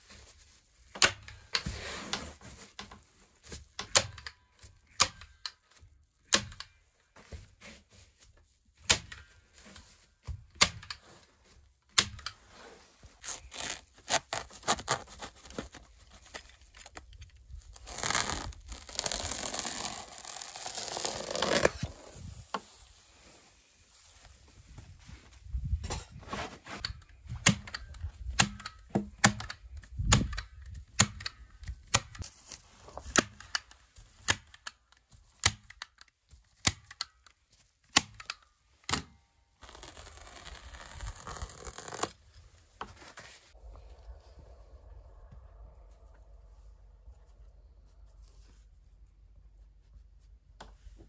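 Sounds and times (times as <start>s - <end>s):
insulation sheet rustling and tearing: 12.4s - 24.6s, 39.6s - 43.6s.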